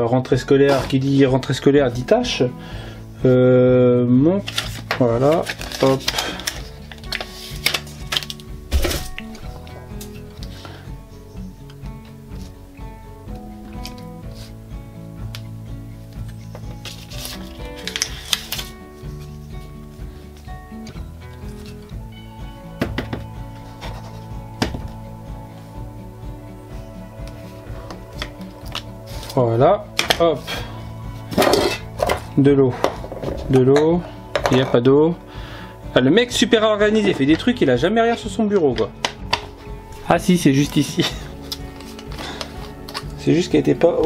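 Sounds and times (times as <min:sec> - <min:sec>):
background music: 0:00.0 - 0:44.0.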